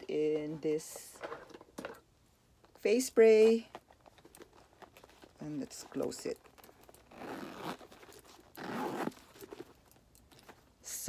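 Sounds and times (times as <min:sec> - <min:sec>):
zipper being pulled shut: 0:06.4 - 0:09.8.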